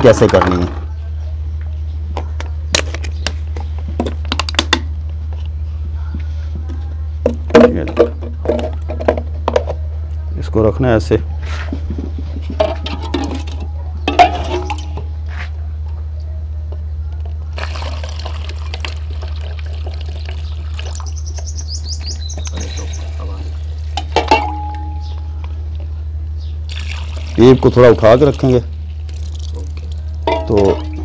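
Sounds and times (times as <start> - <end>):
liquid splashing into bottle: 17.6 - 21.1, 26.7 - 27.7, 28.3 - 31.0
metal mug knocking on pot: 24.0 - 25.1, 30.2 - 31.0.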